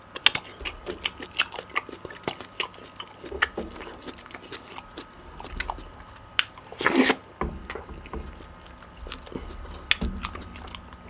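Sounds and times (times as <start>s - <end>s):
close-miked chewing: 0.0s - 11.0s.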